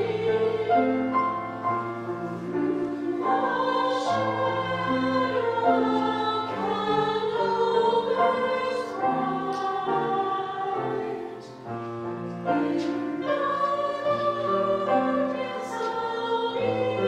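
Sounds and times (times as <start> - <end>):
church choir singing: 0.0 - 17.0.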